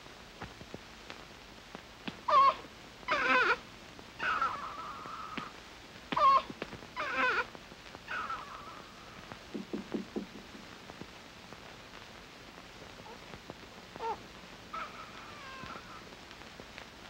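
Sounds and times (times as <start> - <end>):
baby crying: 2.3 - 3.6, 4.2 - 5.5, 6.1 - 7.5, 8.1 - 9.2, 14.0 - 16.1.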